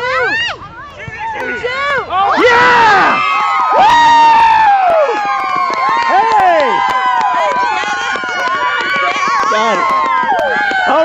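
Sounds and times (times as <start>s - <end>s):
spectators cheering and calling out: 0.0s - 11.0s.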